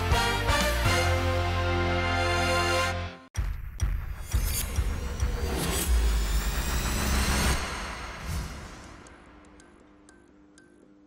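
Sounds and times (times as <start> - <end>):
music: 0.0 - 11.0.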